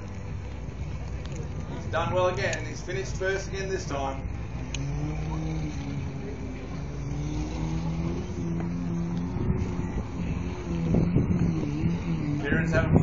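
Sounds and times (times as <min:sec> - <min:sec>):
constant low rumble: 0:00.0 - 0:13.0
distant off-road engine revving: 0:00.6 - 0:13.0.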